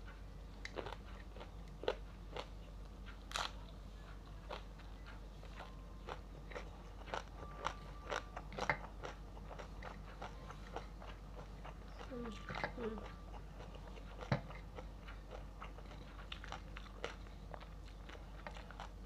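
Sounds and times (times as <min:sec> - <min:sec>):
crunchy food being chewed: 0:00.1 - 0:19.0.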